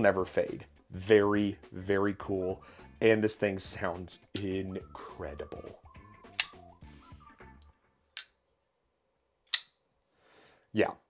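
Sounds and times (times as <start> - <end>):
folding knife blade clicks: 6.3 - 6.6, 9.5 - 9.8.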